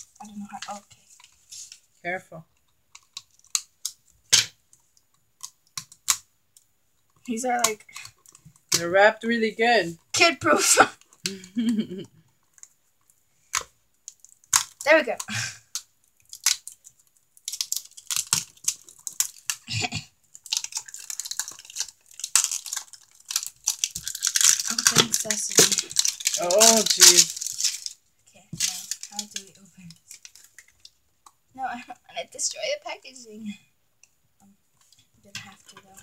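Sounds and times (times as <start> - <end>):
faint plastic crinkles: 0.0 - 9.1, 10.9 - 32.6, 33.6 - 36.0
plastic wrapper crackling: 2.6 - 8.9, 12.4 - 31.4.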